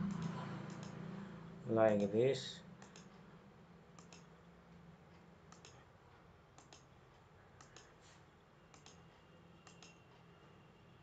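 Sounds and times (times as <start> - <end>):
faint low hum: 0.0 - 11.0
computer mouse clicks: 0.1 - 1.0, 2.8 - 3.2, 4.0 - 4.4, 5.5 - 5.8, 6.6 - 6.9, 7.6 - 8.0, 8.7 - 9.0, 9.6 - 10.1.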